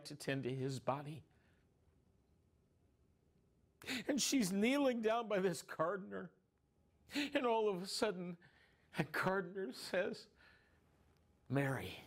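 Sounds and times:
man talking: 0.0 - 1.3, 3.8 - 6.4, 7.1 - 10.4, 11.5 - 12.0.

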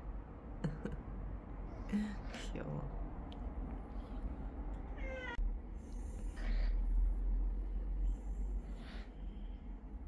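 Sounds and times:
cat meowing: 5.0 - 5.4.

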